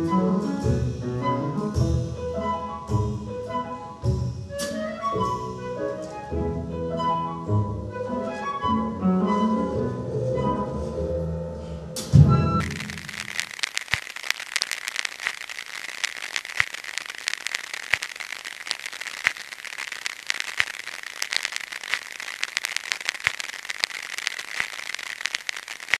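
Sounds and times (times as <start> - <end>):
record surface hiss and crackle: 0.0 - 8.6, 12.0 - 26.0
low record click: 12.6 - 26.0.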